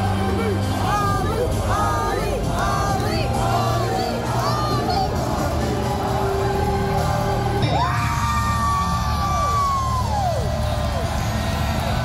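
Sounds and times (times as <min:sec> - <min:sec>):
entrance music over sound system: 0:00.0 - 0:12.0.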